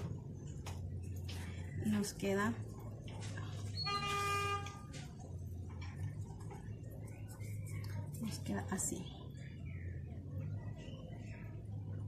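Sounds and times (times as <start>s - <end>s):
low steady hum: 0.0s - 12.0s
horn-like note: 3.8s - 4.9s.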